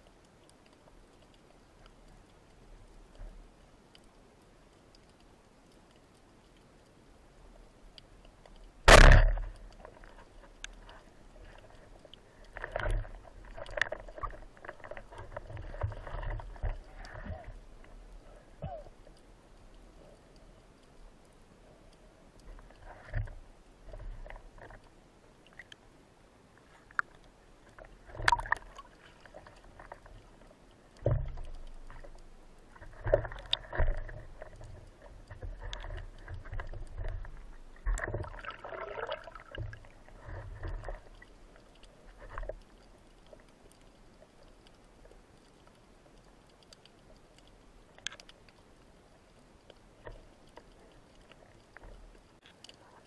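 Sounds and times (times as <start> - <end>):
water sloshing and splashing: 8.2 - 19.2, 26.6 - 53.0.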